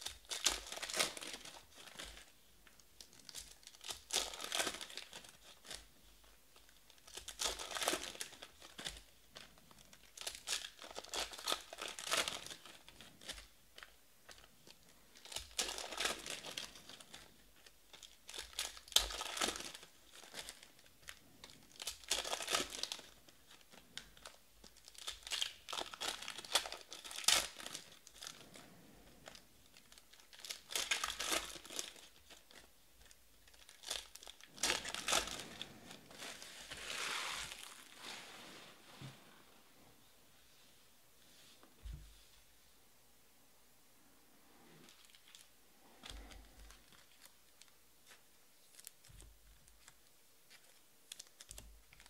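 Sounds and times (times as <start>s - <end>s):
foil wrappers tearing and crinkling: 0.0s - 2.3s, 3.1s - 5.8s, 6.9s - 9.1s, 15.2s - 17.3s, 17.9s - 28.6s, 29.7s - 38.2s.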